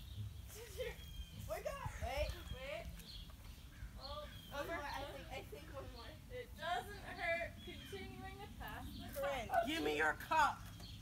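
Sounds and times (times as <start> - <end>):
women talking and calling out: 0.5 - 3.1, 3.9 - 10.8.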